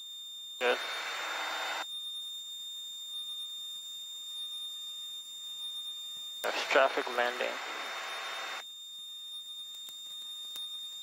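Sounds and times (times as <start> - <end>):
thin electronic whine: 0.0 - 11.0.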